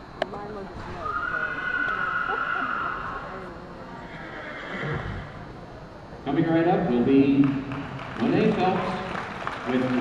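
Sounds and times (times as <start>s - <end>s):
horse whinnying: 1.0s - 3.3s, 4.0s - 5.4s.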